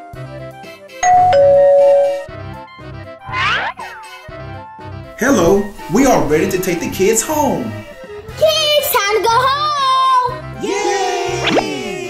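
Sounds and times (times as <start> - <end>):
doorbell ding-dong chime: 1.0 - 2.3
cartoon gliding sound effect: 3.3 - 3.8, 11.4 - 11.9.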